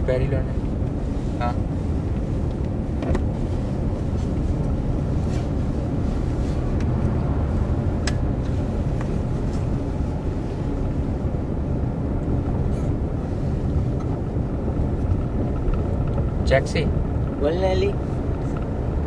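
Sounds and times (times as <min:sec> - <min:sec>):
car interior road and engine rumble: 0:00.0 - 0:19.0.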